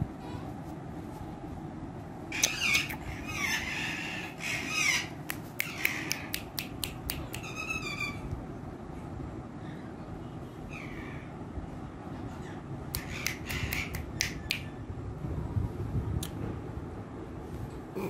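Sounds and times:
parakeet squawking: 0:02.3 - 0:06.3, 0:07.3 - 0:08.3, 0:12.3 - 0:14.8.

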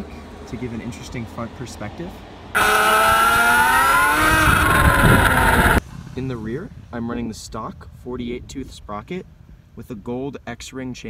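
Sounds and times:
electric motor whining: 0:02.6 - 0:05.8.

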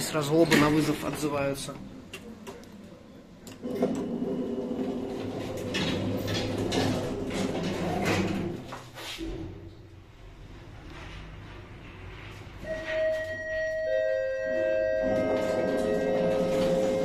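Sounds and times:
lift door mechanism running: 0:03.6 - 0:09.6, 0:11.9 - 0:17.0.

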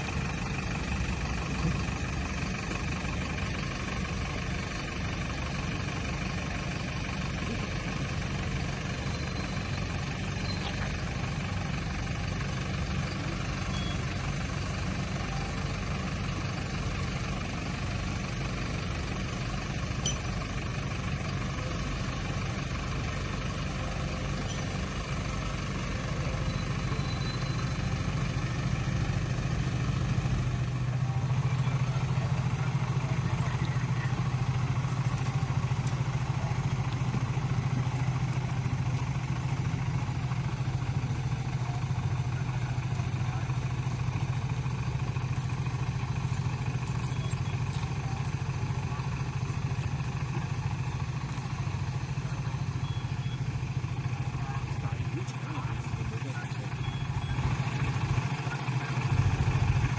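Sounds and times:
vehicle engine running: 0:00.0 - 0:59.9.

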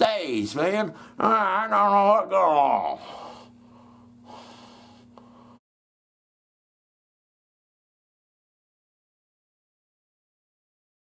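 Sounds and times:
steady low hum: 0:00.0 - 0:05.6
man breathing out: 0:03.0 - 0:05.6.

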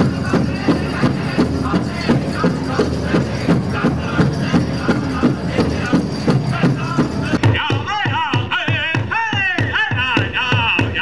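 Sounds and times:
high-pitched group singing: 0:00.0 - 0:08.6
steady big drum beat: 0:00.0 - 0:11.0.

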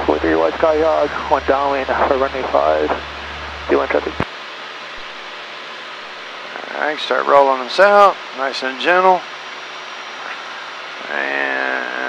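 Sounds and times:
airplane cabin engine hiss: 0:00.0 - 0:12.0.

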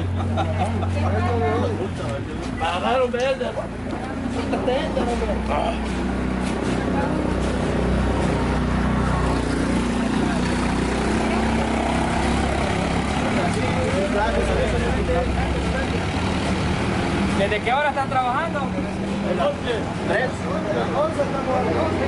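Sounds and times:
people talking: 0:00.0 - 0:22.0
vehicle engine running: 0:00.0 - 0:22.0.

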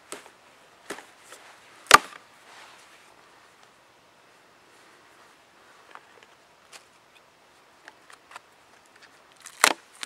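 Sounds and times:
blade chopping log: 0:01.9 - 0:02.2, 0:09.5 - 0:09.8.

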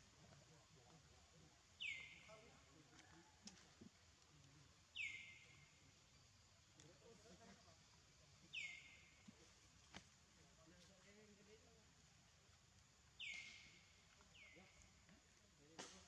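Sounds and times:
bird whistle calls: 0:05.0 - 0:05.4, 0:08.6 - 0:09.1, 0:13.2 - 0:13.8.

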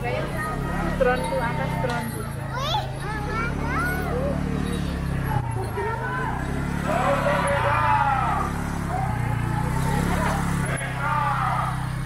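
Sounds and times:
motorcycle engine idling: 0:00.0 - 0:12.0
people calling out: 0:00.0 - 0:12.0.

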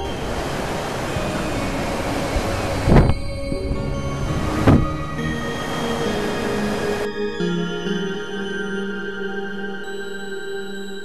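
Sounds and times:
heavy surf breaking: 0:00.0 - 0:07.1
ambient music sustained tones: 0:00.0 - 0:11.0.

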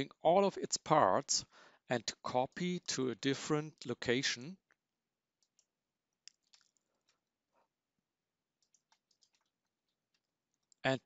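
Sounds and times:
computer mouse clicks: 0:08.6 - 0:09.5.

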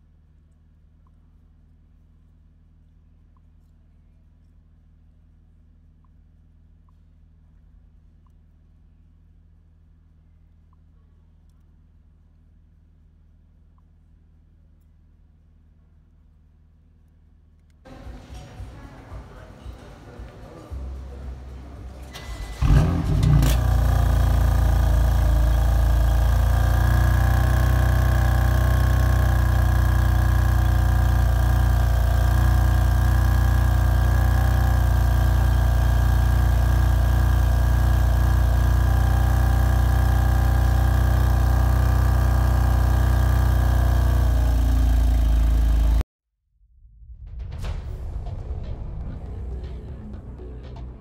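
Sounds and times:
car engine starting and idling: 0:17.9 - 0:46.0.

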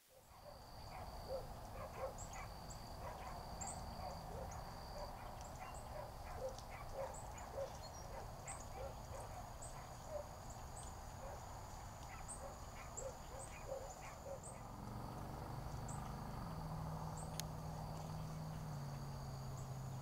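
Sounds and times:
chorus of animal calls: 0:00.2 - 0:17.3.

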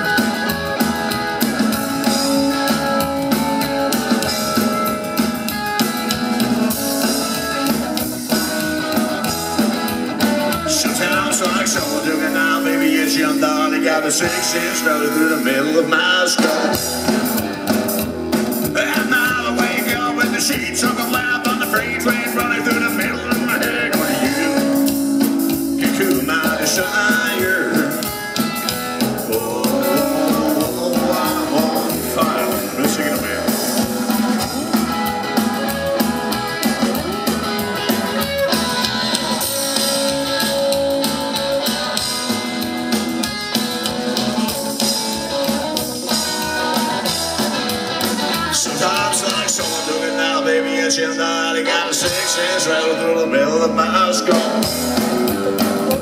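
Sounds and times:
band playing live: 0:00.0 - 0:56.0.

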